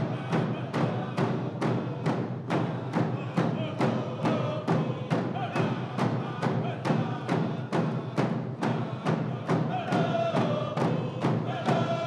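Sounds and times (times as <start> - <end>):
drum beaten steadily: 0.0 - 12.0.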